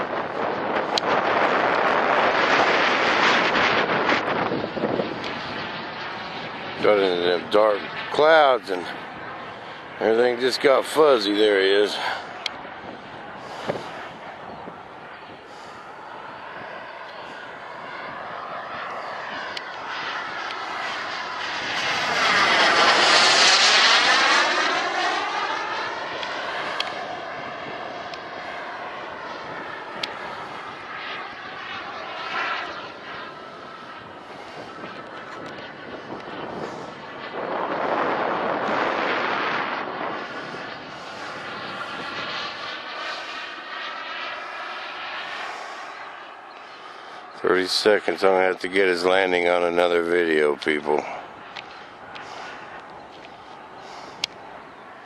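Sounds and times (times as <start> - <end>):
model jet turbine whine: 0.0 - 55.0.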